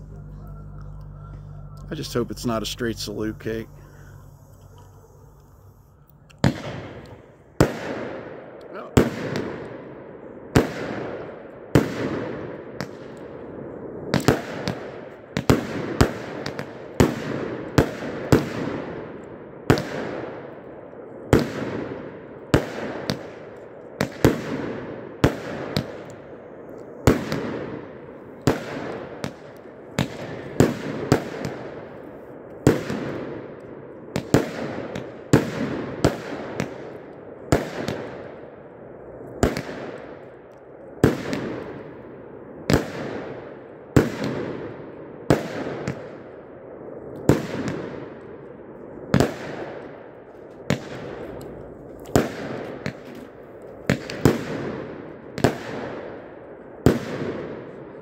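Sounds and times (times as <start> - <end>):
firework shots: 0.0 - 58.0.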